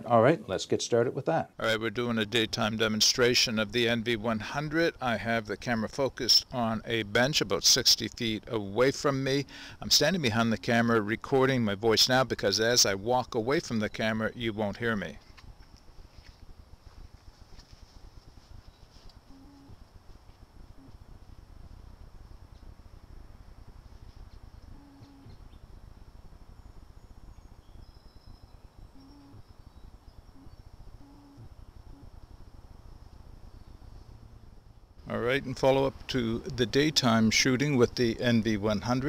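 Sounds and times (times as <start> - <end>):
low rumble: 15.4 - 36.5
short low calls: 19.2 - 19.9, 24.6 - 25.6, 28.9 - 29.5, 30.2 - 32.2
faint chirps: 24.5 - 32.2
thin steady high tone: 26.4 - 32.2.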